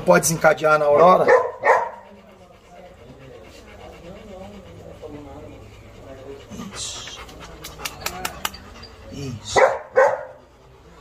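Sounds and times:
dog panting quietly: 0.0 - 11.0.

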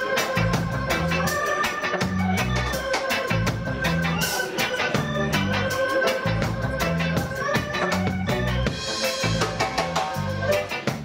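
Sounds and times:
live reggae band playing: 0.0 - 11.0.

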